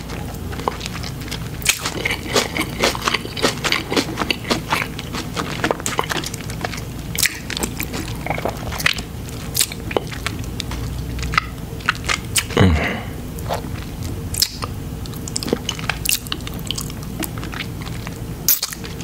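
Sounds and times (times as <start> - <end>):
chewing crunchy chips: 0.0 - 19.0.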